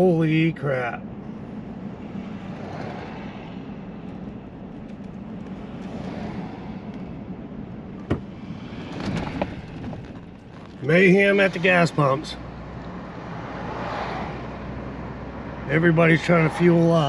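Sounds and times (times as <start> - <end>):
car engine hum: 0.0 - 17.0
road and tyre noise: 0.0 - 17.0.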